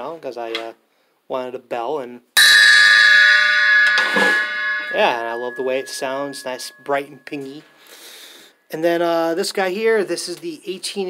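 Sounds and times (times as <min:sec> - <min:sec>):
bell cymbal ringing: 0:02.4 - 0:07.2.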